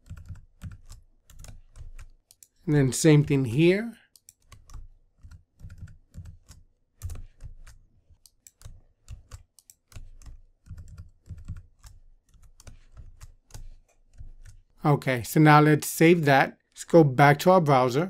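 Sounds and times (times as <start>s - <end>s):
computer keyboard typing: 0.0s - 14.8s.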